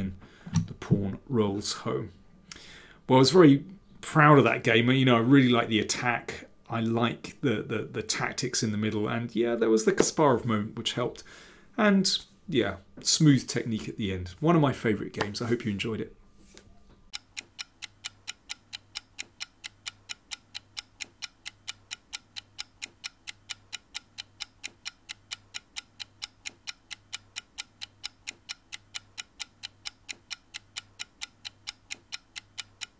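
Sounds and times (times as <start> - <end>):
clock-like ticking: 17.1 - 32.9.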